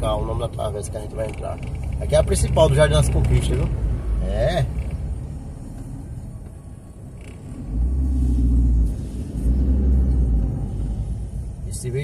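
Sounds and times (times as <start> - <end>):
car engine and road rumble: 0.0 - 12.0.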